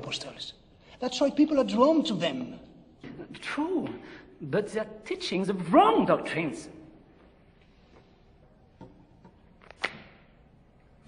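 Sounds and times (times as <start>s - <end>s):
sharp snap: 9.7s - 10.2s.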